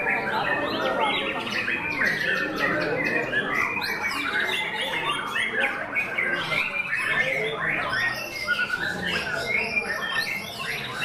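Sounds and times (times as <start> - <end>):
birds singing whistled phrases: 0.0 - 11.0.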